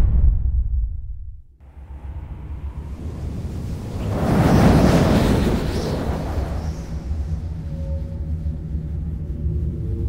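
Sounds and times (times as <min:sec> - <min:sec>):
low rushing rumble: 0:00.0 - 0:10.0.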